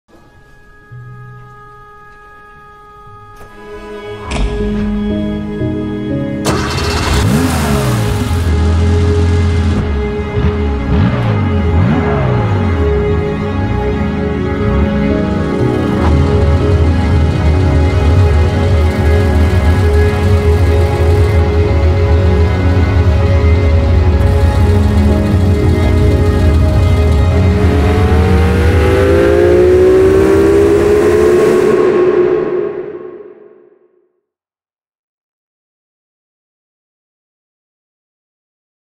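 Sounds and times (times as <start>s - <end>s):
background music: 0.1s - 33.8s
car engine starting and revving: 6.4s - 13.8s, 15.5s - 33.1s.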